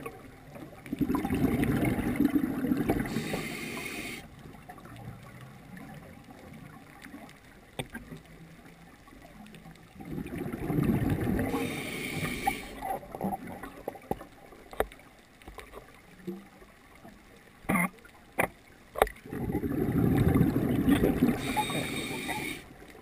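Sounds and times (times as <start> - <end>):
regulator bubbles gurgling: 0.0 - 8.4, 9.1 - 14.8, 19.0 - 23.0
regulator inhalation hiss: 3.0 - 4.3, 11.5 - 12.8, 21.4 - 22.7.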